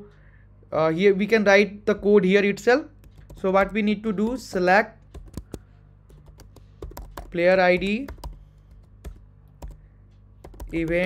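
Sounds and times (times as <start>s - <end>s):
faint low hum: 0.0s - 11.0s
keyboard keystroke clicks: 3.0s - 11.0s.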